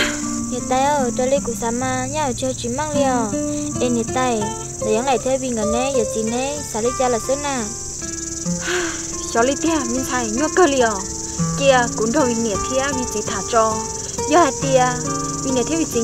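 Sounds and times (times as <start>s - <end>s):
insects droning: 0.0s - 16.0s
spoken dialogue: 9.2s - 16.0s.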